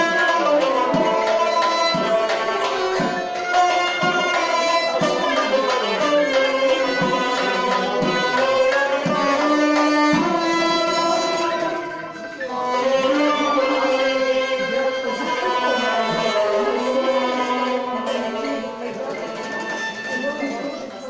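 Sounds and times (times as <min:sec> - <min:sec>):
plucked lutes: 0:00.0 - 0:20.4
hand drum: 0:00.0 - 0:20.6
wind instrument melody: 0:00.0 - 0:21.0.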